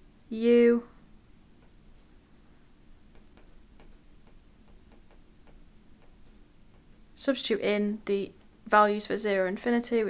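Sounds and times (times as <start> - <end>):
stylus tapping on glass screen: 3.1 - 7.0.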